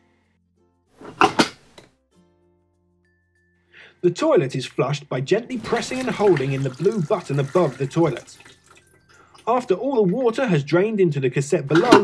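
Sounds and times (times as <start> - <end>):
toilet flap handle scraping: 1.0 - 1.9, 11.7 - 12.0.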